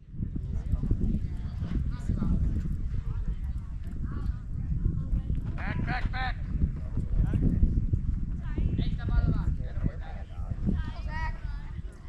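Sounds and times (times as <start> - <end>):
constant low rumble: 0.0 - 12.0.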